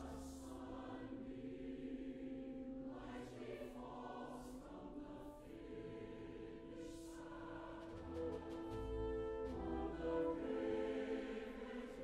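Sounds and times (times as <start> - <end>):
choir singing slow held notes: 0.0 - 12.0.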